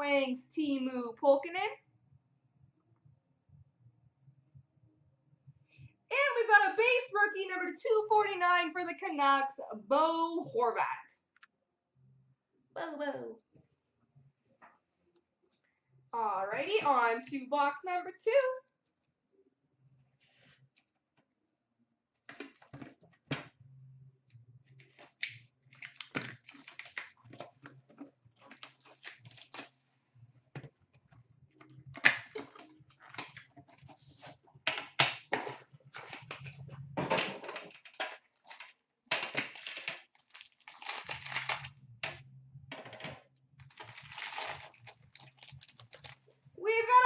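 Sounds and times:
cardboard packaging clicks and rustles: 24.8s - 29.8s, 43.6s - 46.3s.

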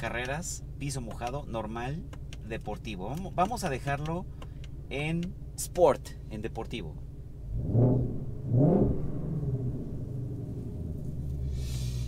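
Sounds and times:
car engine idling: 0.0s - 12.0s
car engine revving: 7.4s - 12.0s.

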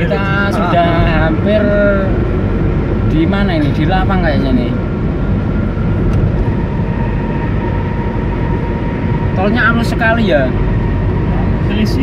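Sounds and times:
car tyres and engine rumble: 0.0s - 12.0s.

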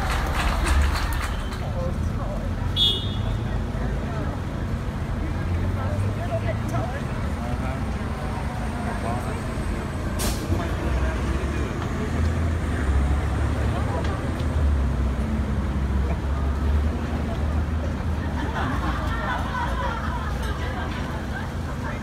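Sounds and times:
crowd chattering: 0.0s - 22.0s
traffic engine rumble: 0.0s - 22.0s
short hiss: 10.2s - 10.6s.

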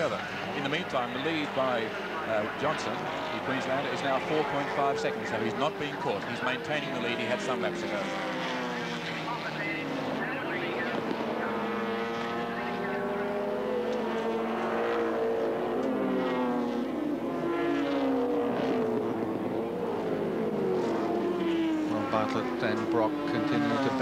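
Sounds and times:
racing car engines revving: 0.0s - 24.0s.

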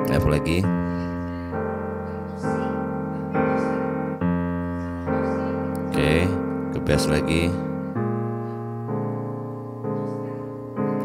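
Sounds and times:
digital piano blues chords: 0.0s - 11.0s.

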